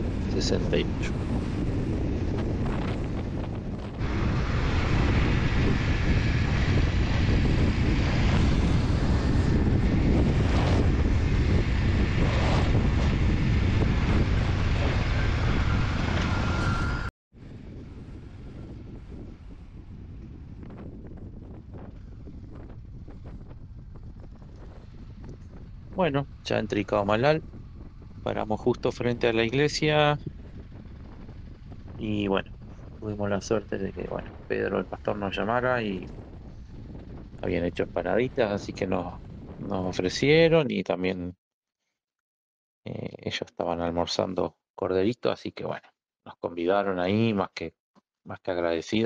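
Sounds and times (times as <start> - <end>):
wind on microphone: 0.0 - 40.7
quiet steady rumble: 17.4 - 40.6.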